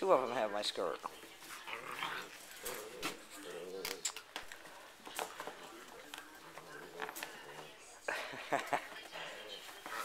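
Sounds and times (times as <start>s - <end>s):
puppies making play noises: 1.0s - 7.4s.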